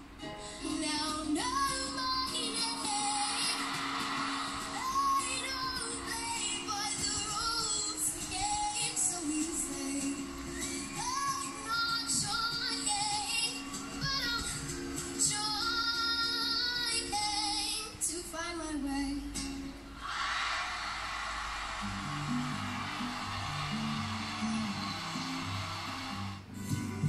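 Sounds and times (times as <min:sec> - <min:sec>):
ukulele: 0:00.0 - 0:20.0, 0:21.4 - 0:27.0
girl singing: 0:00.5 - 0:03.8, 0:04.6 - 0:19.8
audience applause: 0:03.1 - 0:07.0, 0:20.2 - 0:26.5.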